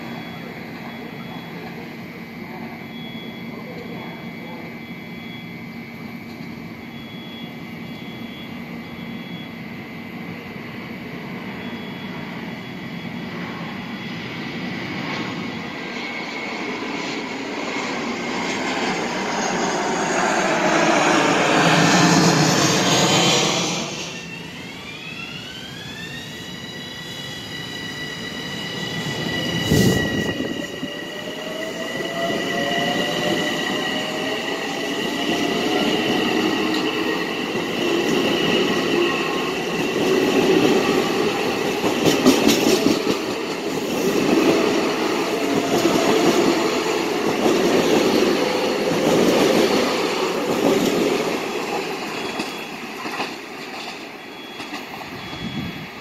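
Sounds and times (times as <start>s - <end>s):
wheel squeal: 22.0s - 43.6s, 50.7s - 55.8s
train rumble: 28.2s - 56.0s
clattering train wheels: 29.0s - 55.6s.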